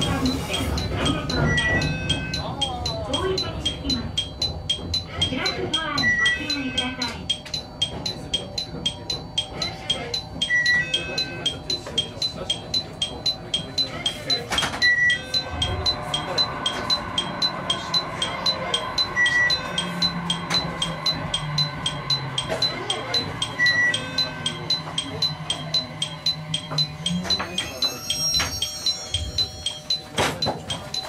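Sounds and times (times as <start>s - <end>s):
electronic chime striking: 0.0s - 31.0s.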